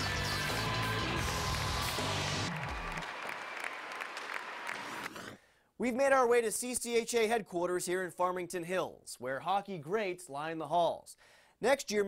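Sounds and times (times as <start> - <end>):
background music: 0.0 - 3.3
crowd applauding: 0.0 - 5.3.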